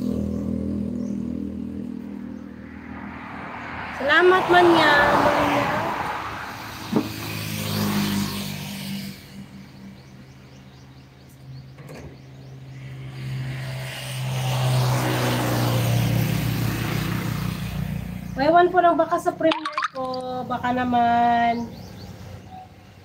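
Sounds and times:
vehicles rushing by: 0.0 - 23.0.

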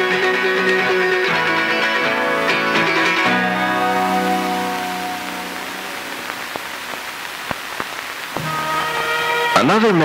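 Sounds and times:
acoustic guitar chord: 0.1 - 6.9
steady hiss: 0.2 - 10.0.

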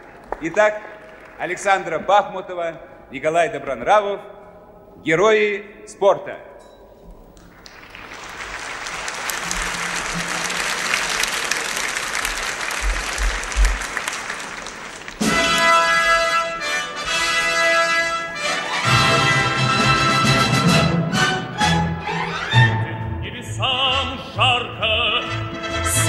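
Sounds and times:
audience applause: 0.0 - 1.8, 7.5 - 16.6
orchestra playing: 9.3 - 12.4, 15.2 - 26.0.

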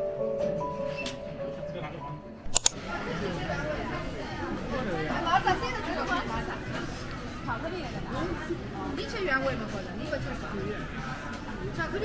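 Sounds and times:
soft background music: 0.0 - 5.0
sharp clicks: 2.5 - 2.8.

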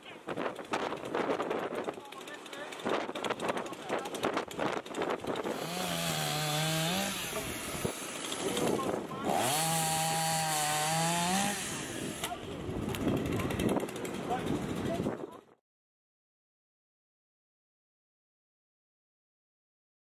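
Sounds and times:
chainsaw cutting wood: 0.3 - 15.1.

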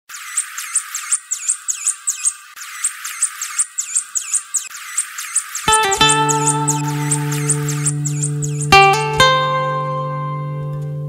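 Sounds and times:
bird chirping: 0.1 - 9.3.

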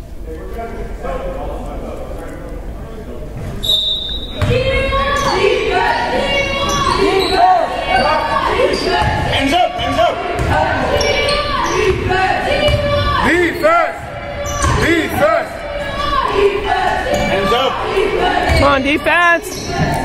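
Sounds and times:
referee's whistle: 3.6 - 4.5
shoes squeaking on gym floor: 6.5 - 9.2, 18.5 - 20.0
ball dribbling: 8.7 - 13.2.

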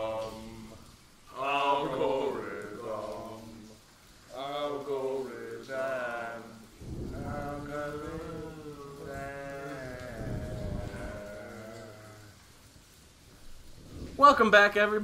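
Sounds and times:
wavering sung chant: 0.0 - 12.6.

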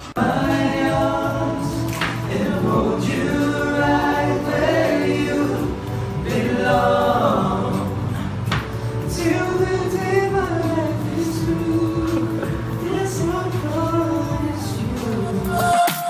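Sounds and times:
young men singing in harmony: 0.1 - 16.0.

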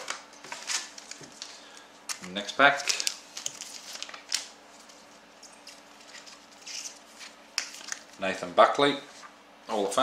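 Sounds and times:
cards rustling: 0.0 - 8.2
wrapper crinkling and tearing: 2.8 - 4.6.

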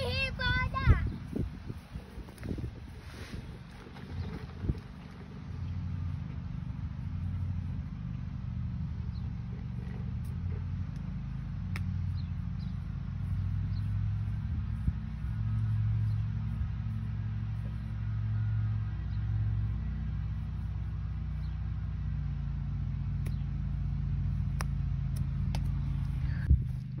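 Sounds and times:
low rumble: 0.0 - 27.0.

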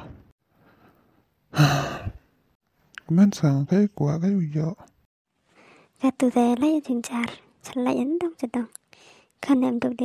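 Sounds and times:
man sighing: 1.5 - 2.2.

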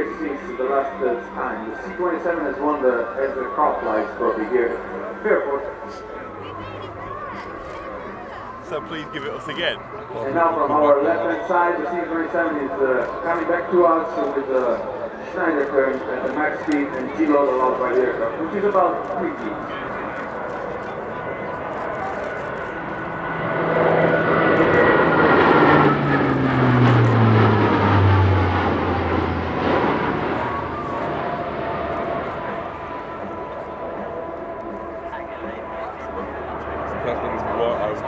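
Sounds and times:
turboprop aircraft propeller drone: 0.0 - 38.0.

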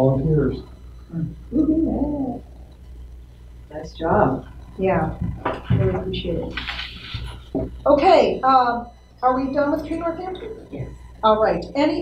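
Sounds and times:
person murmuring: 1.1 - 2.4.

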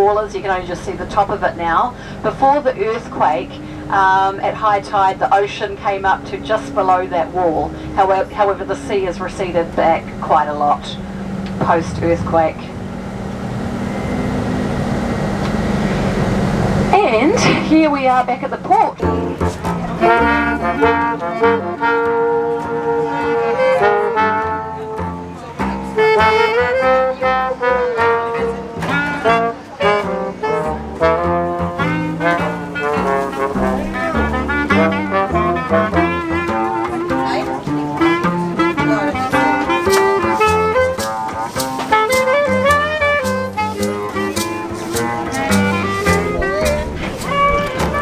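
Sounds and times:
jazz band playing: 0.0 - 48.0.

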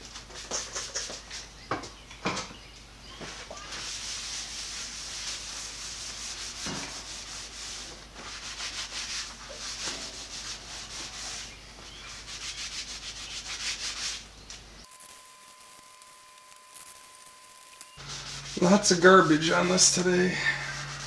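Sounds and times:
paper towel wiping metal table: 3.3 - 14.2, 18.0 - 21.0.

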